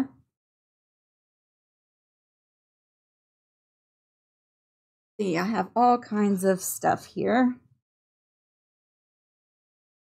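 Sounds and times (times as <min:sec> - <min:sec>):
woman speaking: 0:00.0 - 0:00.2, 0:05.2 - 0:07.8.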